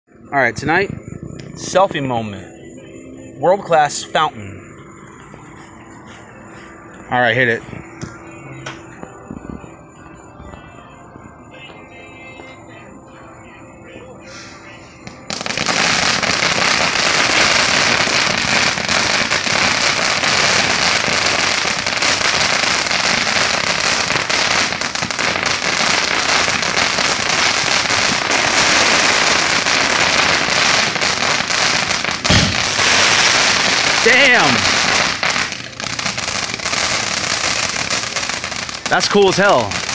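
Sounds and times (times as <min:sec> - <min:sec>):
firework fountain hissing: 0:14.2 - 0:39.9
firework crackles: 0:14.3 - 0:39.9.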